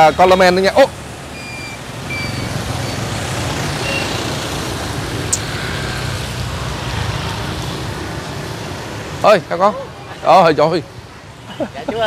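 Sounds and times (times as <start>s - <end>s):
vehicle engines running low: 0.0s - 11.5s.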